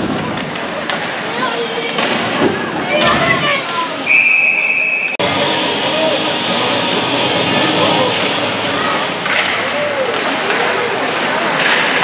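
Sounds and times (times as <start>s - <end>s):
hubbub of crowd and players: 0.0s - 12.0s.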